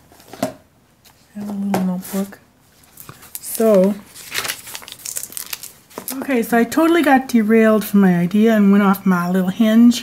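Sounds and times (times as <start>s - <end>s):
paper rustling and crinkling: 0.1s - 6.3s.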